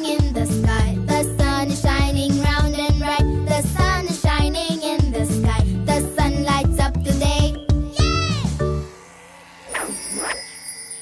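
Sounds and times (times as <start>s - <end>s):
faint steady high tone: 7.6s - 11.0s
cartoon swooshes: 9.3s - 11.0s.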